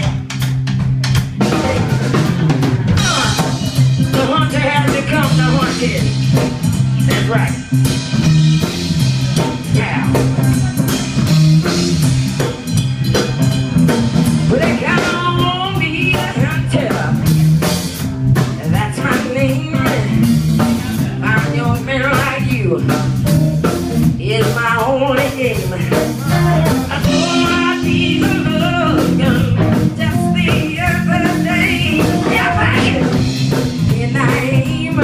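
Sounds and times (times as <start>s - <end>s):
live blues band playing: 0.0s - 35.0s
person singing: 2.9s - 6.2s, 14.4s - 17.3s, 18.5s - 23.1s, 24.2s - 33.3s, 33.9s - 35.0s.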